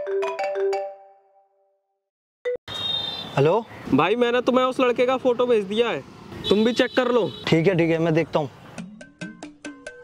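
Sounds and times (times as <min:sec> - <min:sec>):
phone ringtone melody: 0:00.0 - 0:01.7.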